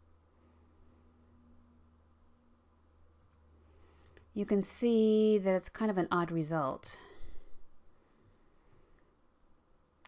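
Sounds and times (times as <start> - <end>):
low steady hum: 0.0 - 10.0
computer mouse clicks: 3.2 - 4.3.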